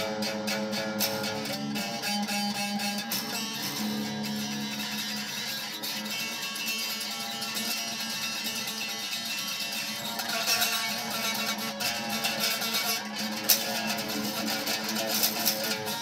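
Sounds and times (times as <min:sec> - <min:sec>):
fast-picked electric guitar: 0:00.0 - 0:16.0.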